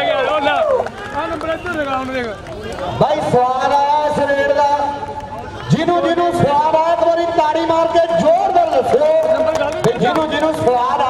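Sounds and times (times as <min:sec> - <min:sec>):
men shouting and calling: 0:00.0 - 0:11.0.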